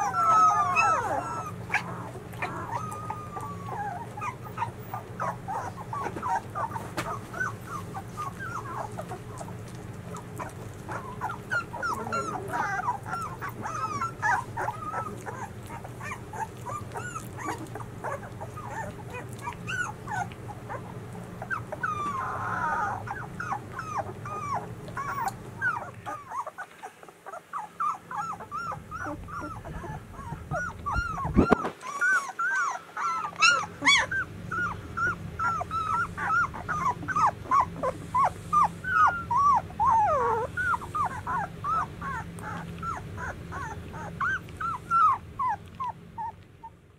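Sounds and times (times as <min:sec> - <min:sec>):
puppies whimpering and squeaking: 0:00.0 - 0:46.9.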